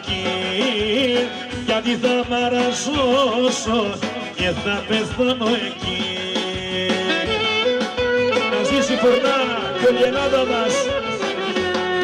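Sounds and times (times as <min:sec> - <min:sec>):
folk band backing: 0:00.0 - 0:12.0.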